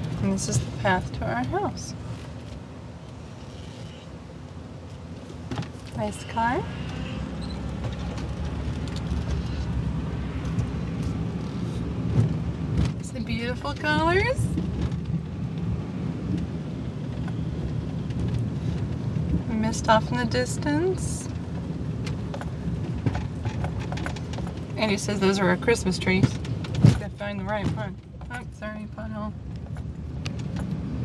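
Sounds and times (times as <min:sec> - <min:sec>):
car engine and tyres rumbling: 0:00.0 - 0:31.0.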